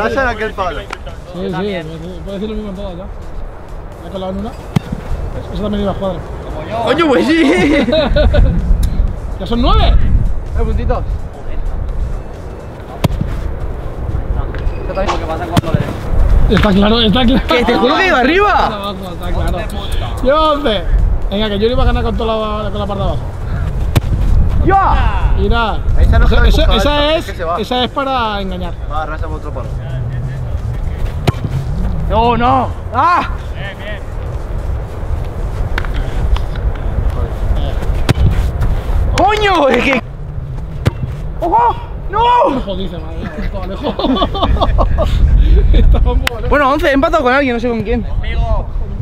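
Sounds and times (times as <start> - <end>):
wind rumbling on microphone: 0.0 - 49.0.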